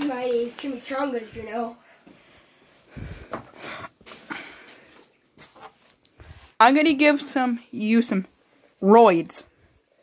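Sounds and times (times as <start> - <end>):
rustles and scrapes of handling: 0.0 - 7.5.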